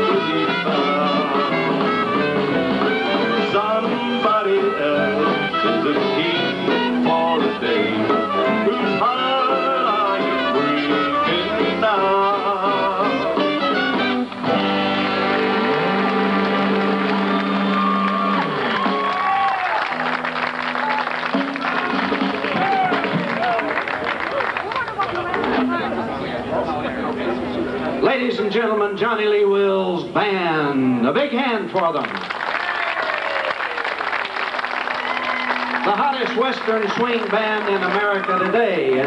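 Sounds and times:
western swing band playing: 0.0 - 26.5, 34.2 - 39.0.

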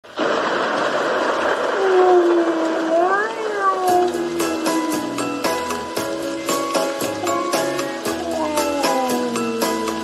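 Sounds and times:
rain hissing: 0.0 - 10.0.

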